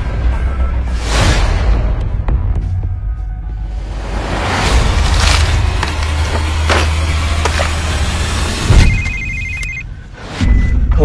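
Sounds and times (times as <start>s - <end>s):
rumbling trailer soundtrack: 0.0s - 8.9s
mobile phone ringing: 8.8s - 10.0s.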